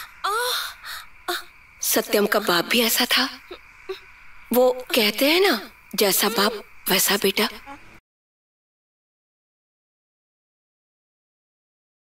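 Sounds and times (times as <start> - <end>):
woman moaning breathily: 0.0 - 1.5, 6.2 - 6.7.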